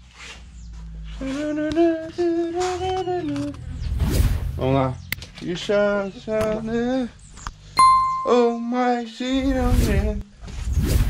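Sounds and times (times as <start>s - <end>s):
electronic ding: 7.8s - 8.7s
man humming a tune: 7.8s - 8.8s.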